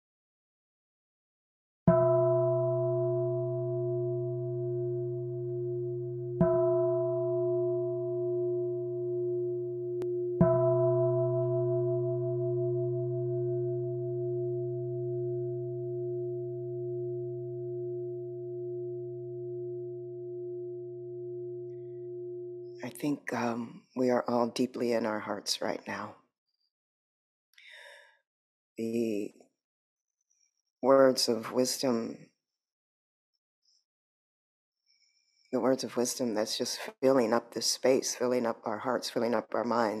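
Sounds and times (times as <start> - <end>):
singing bowl ringing: 1.9 - 22.8.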